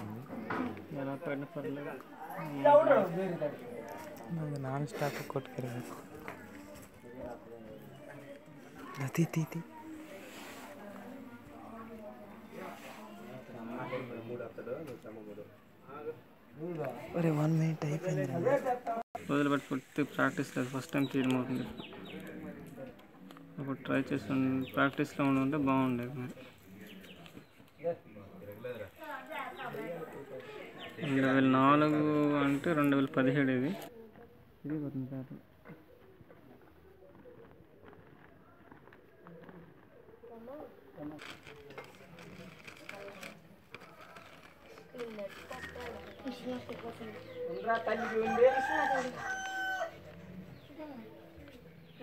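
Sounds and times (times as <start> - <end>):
faint voices talking: 0.0 - 52.0
rooster crowing: 47.8 - 50.2.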